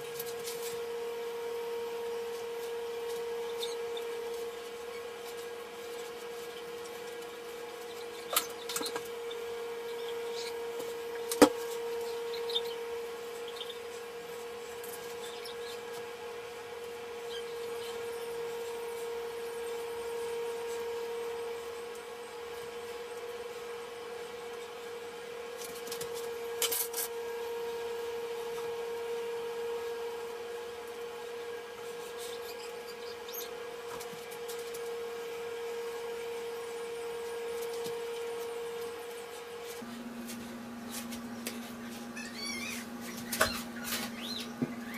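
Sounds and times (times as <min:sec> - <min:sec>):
steady mid-pitched hum: 0:00.0 - 0:44.9.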